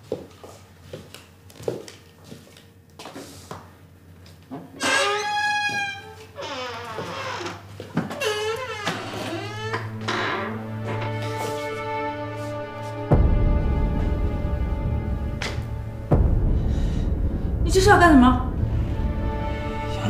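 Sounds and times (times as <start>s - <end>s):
soft footsteps: 0.0s - 4.4s, 10.8s - 13.2s
low drone with held notes: 8.4s - 20.0s.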